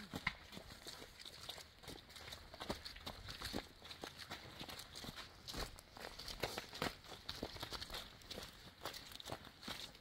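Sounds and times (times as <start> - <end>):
footsteps crunching on leaves: 0.0 - 10.0.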